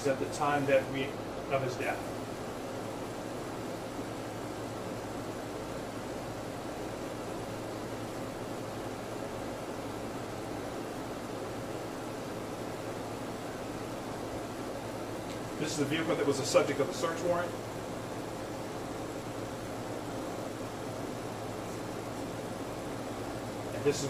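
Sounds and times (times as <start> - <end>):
even hiss: 21.4 - 24.0.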